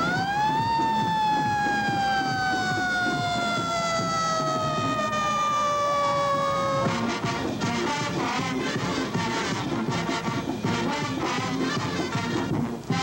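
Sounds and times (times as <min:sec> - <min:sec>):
fire truck siren wailing: 0:00.0 - 0:13.0.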